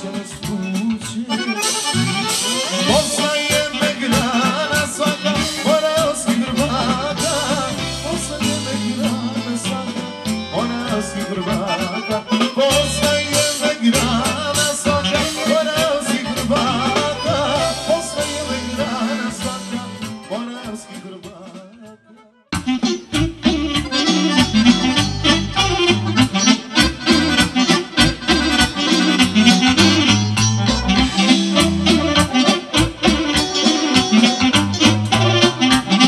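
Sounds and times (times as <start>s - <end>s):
man singing into a microphone: 0.0s - 22.2s
accordion: 0.0s - 36.0s
drum kit: 0.0s - 36.0s
saxophone: 0.0s - 36.0s.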